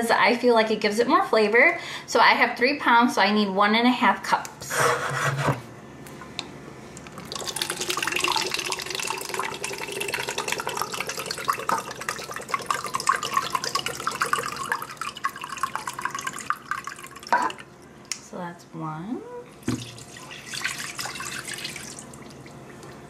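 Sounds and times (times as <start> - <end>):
broth pouring into plastic cup: 7.2 - 17.3.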